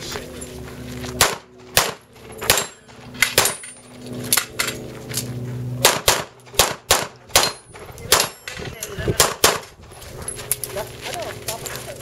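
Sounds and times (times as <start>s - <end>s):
handgun shots: 1.2s - 3.6s, 5.8s - 8.4s, 9.2s - 9.7s.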